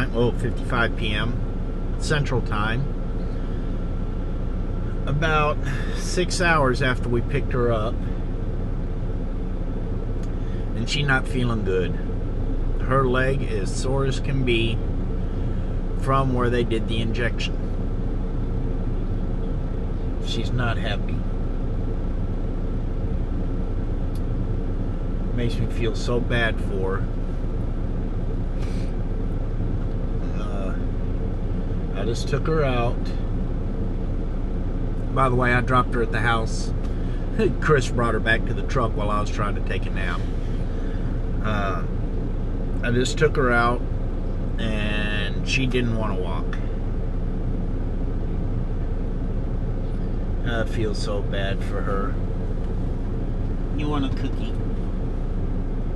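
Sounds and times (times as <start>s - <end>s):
truck engine idling: 0.0s - 55.9s.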